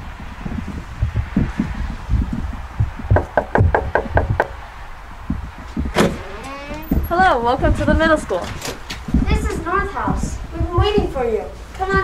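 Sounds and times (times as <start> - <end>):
knuckles knocking on glass door: 0.5 - 4.6
door bumping open: 2.8 - 4.6, 5.3 - 9.5.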